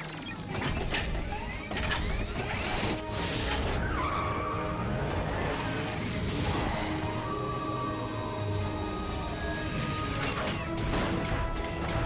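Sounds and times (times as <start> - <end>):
action music: 0.0 - 12.0.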